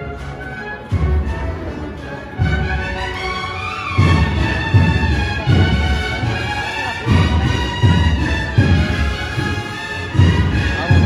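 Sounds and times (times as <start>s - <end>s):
brass band playing a march: 0.0s - 11.0s
bass drum beats: 4.0s - 11.0s.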